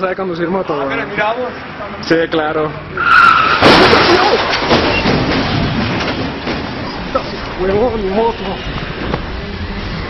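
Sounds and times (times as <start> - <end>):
high squeal: 3.0 - 5.2
motorbike skidding and clattering: 3.2 - 7.6.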